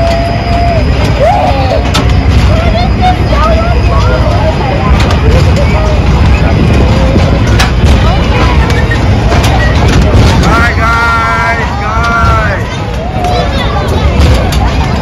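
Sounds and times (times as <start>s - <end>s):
children and adults voices: 0.0s - 15.0s
fairground ride machinery rumble: 0.0s - 15.0s.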